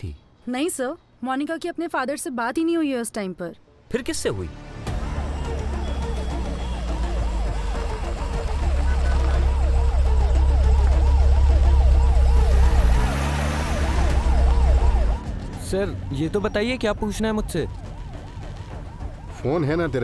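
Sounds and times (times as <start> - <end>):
police siren yelping: 5.4 - 20.0.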